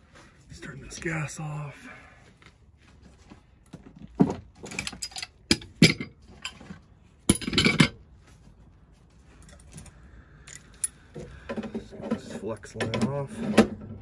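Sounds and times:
metal wrenches clinking and rattling: 4.5s - 8.0s, 9.3s - 13.8s.

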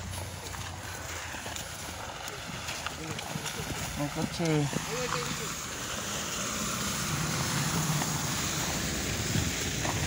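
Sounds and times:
car tyres on slushy street: 0.0s - 10.0s.

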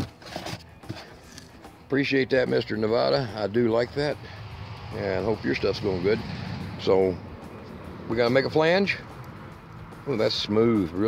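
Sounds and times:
plastic scraping in styrofoam: 0.0s - 1.5s.

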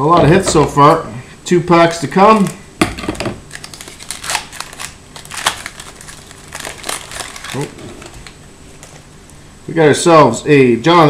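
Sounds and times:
foil wrapper crinkling: 3.5s - 9.2s.

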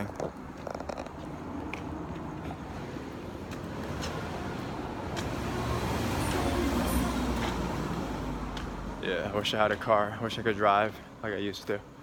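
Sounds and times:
car passing by: 1.4s - 10.0s.

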